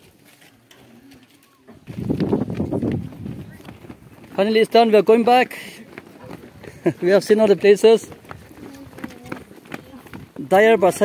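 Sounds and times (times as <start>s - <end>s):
footsteps on stony dirt path: 0.0s - 11.0s.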